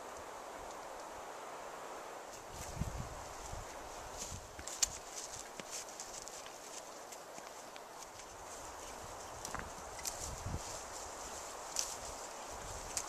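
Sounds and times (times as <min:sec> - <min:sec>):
faint steady hiss: 0:00.0 - 0:13.0
hoof steps on sand: 0:02.3 - 0:13.0.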